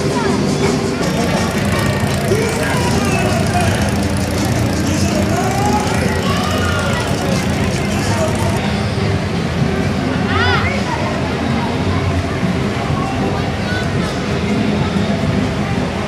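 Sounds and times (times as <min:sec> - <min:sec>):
voices talking and calling: 0:00.4 - 0:08.6
vehicle engine running: 0:00.9 - 0:08.6.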